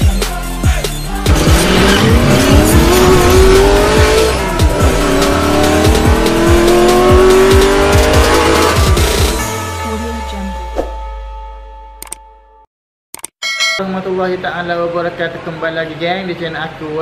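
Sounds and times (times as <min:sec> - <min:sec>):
music with steady beat: 0:00.0 - 0:11.3
race car engine revving: 0:01.2 - 0:10.2.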